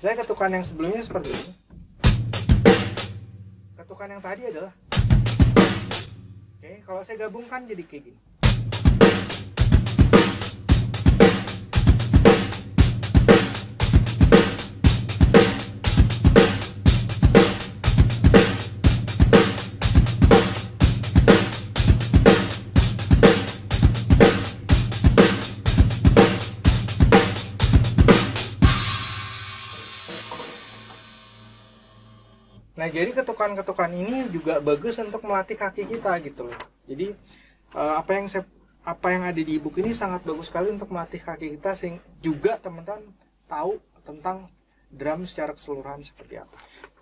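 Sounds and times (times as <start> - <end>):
drum kit playing a groove: 1.1 - 3.5, 4.9 - 6.4, 8.4 - 32.2
cymbal ringing: 28.6 - 32.6.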